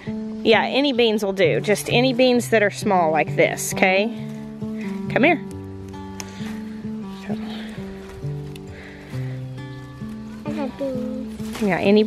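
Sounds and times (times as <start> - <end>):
gentle melody of held notes: 0.0 - 12.0.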